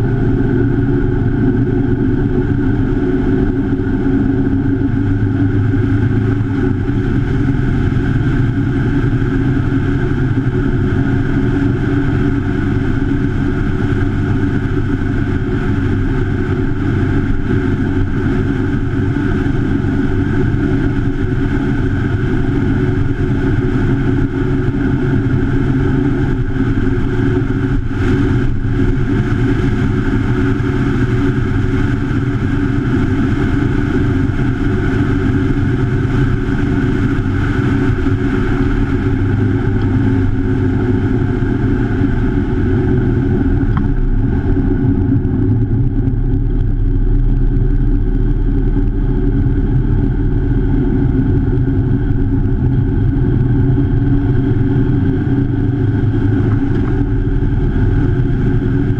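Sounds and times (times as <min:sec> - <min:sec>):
motorcycle engine running: 0:00.0 - 0:58.9
wind rushing over camera: 0:00.0 - 0:58.9.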